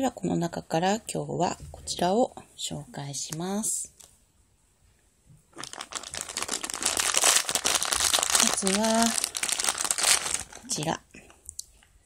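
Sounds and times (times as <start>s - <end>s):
plastic bag crinkling: 5.5s - 11.0s.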